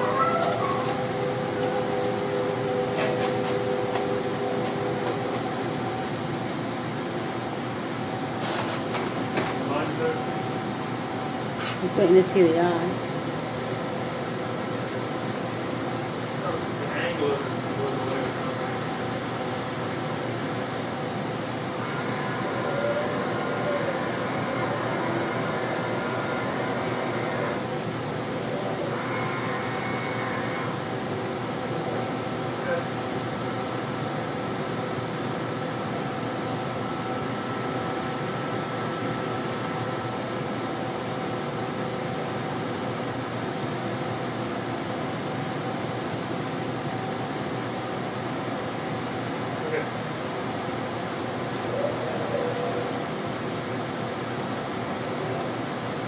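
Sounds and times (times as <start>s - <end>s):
steady machine hum: 0.0s - 56.0s.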